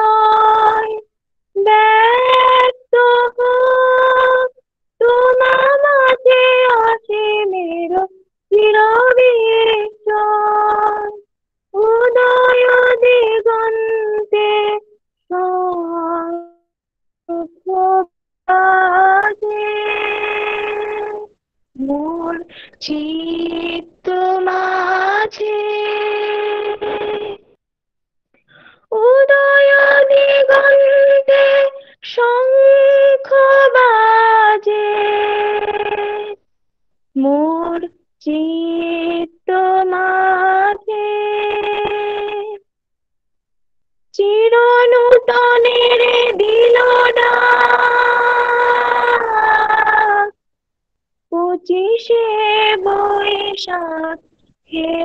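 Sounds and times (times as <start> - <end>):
woman singing: 0.0 - 16.6, 17.3 - 27.5, 28.8 - 36.4, 37.2 - 42.7, 44.1 - 50.4, 51.3 - 55.0.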